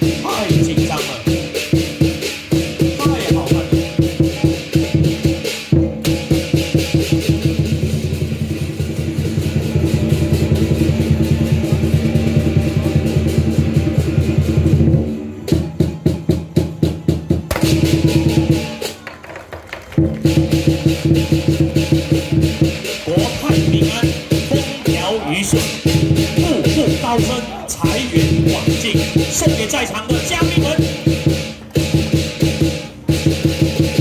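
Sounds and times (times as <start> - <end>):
drum cymbals and gong beat: 0.0 - 18.9, 20.2 - 34.0.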